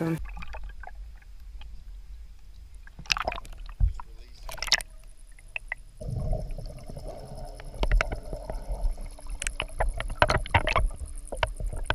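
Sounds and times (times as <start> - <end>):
sharp knocks and clicks: 9.3 - 11.9.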